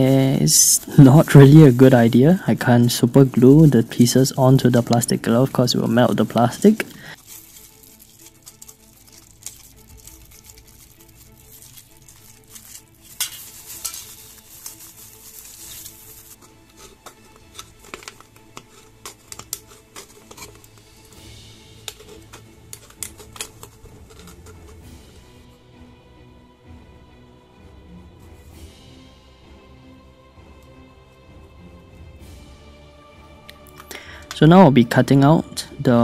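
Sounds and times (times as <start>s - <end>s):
faint background music: 0.0s - 36.0s
aluminium can crinkling and clicking: 4.4s - 24.8s.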